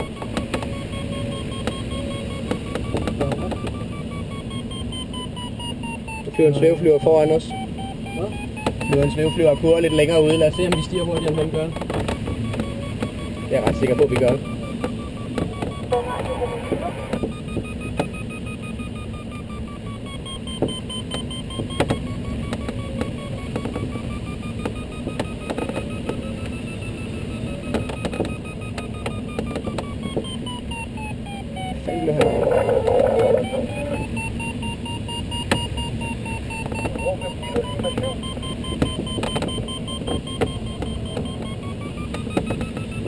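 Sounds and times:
variometer beeping rapidly: 0:00.0 - 0:43.0.

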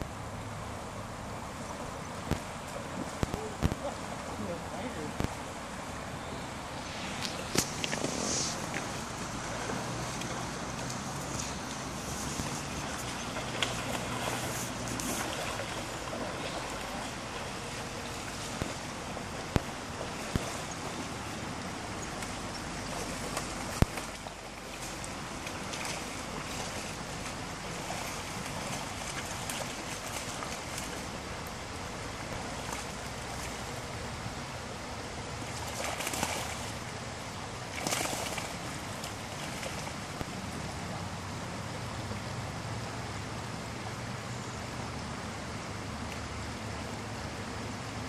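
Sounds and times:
river rushing over stones: 0:00.0 - 0:44.0.

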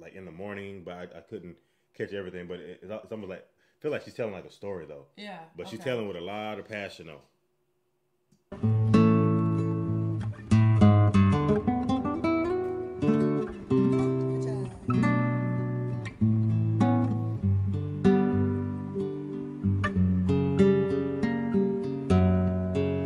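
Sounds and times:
acoustic guitar playing: 0:08.5 - 0:23.0.

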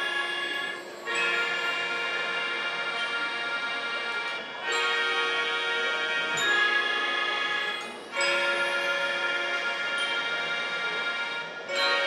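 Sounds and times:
melodicas playing held chord: 0:00.0 - 0:12.0.

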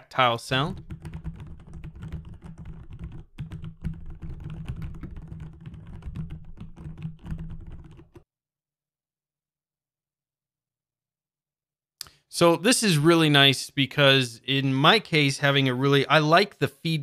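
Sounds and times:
soft mechanical keyboard typing: 0:00.6 - 0:08.2.

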